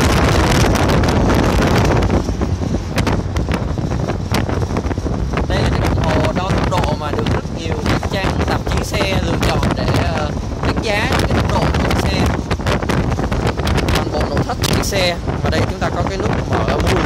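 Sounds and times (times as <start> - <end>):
car road noise rumble: 0.0 - 17.0
wind buffeting microphone: 0.0 - 17.0.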